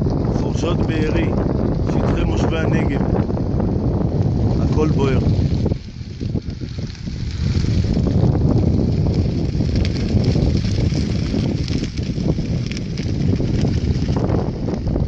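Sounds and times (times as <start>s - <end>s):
fire crackling: 0.0s - 15.0s
wind rumbling on microphone: 0.0s - 15.0s.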